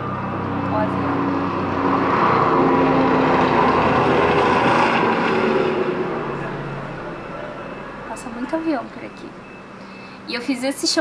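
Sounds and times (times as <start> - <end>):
loud vehicle passing: 0.0 - 10.4.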